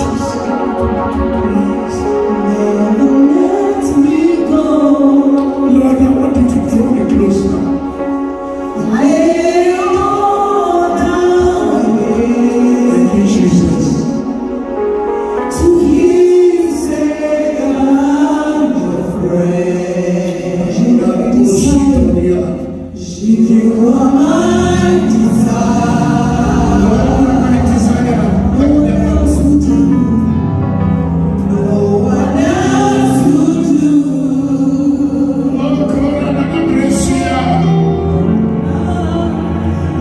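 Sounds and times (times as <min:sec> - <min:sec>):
gospel choir singing: 0:00.0 - 0:40.0
live band playing: 0:00.0 - 0:40.0.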